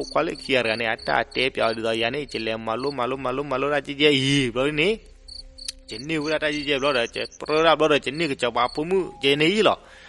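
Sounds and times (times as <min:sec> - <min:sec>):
insect-like chirping: 0:00.0 - 0:03.1, 0:05.2 - 0:09.5
man narrating: 0:00.0 - 0:05.1, 0:05.7 - 0:09.9.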